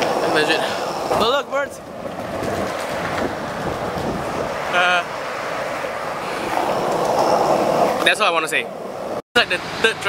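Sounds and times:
wind buffeting microphone: 0.0s - 9.2s.

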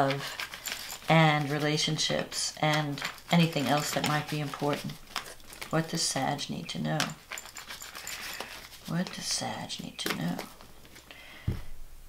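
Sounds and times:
cards being shuffled: 0.0s - 6.4s, 7.0s - 11.1s.

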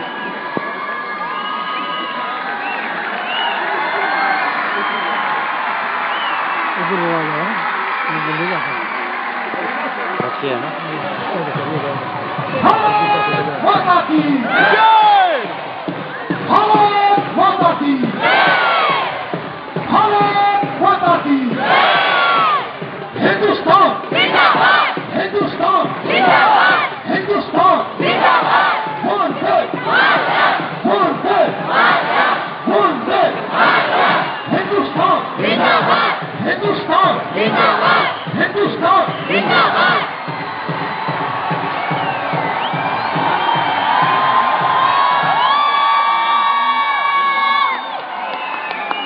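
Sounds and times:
crowd din: 0.0s - 49.0s
crowd chanting in rhythm: 18.0s - 19.4s, 21.4s - 40.9s.

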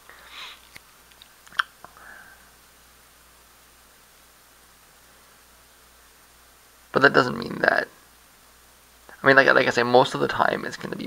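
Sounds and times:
room tone hiss: 0.0s - 11.0s
person speaking: 6.9s - 8.0s, 9.1s - 11.0s.

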